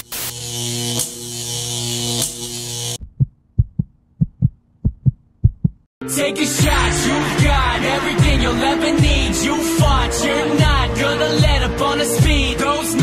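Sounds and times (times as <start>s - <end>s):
deep bass thumps: 3.0s - 5.9s.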